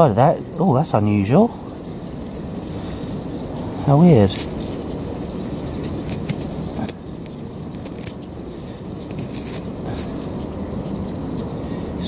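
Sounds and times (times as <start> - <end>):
fingers scraping grit off pipe: 5.6 - 10.4.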